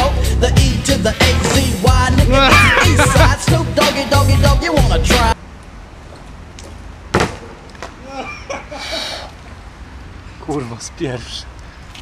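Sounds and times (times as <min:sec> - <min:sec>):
bike landing impact on paving: 0:06.6 - 0:08.0.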